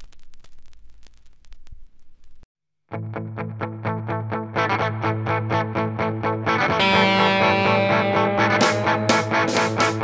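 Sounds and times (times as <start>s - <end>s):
crackling static clicks: 0.0s - 2.5s.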